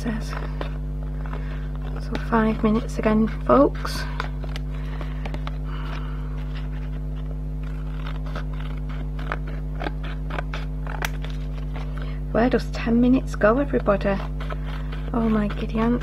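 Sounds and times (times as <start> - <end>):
card rustling and scraping: 0.0 - 12.3, 13.1 - 16.0
steady low hum: 0.0 - 16.0
scissors snipping card: 7.6 - 11.8.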